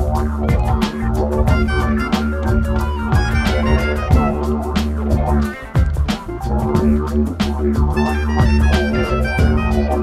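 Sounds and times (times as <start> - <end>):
didgeridoo droning: 0.0 - 10.0
electronic dance track: 0.0 - 10.0.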